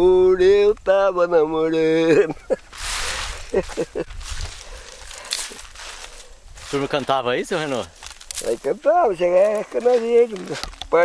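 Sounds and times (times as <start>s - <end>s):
man laughing: 1.8s - 4.4s.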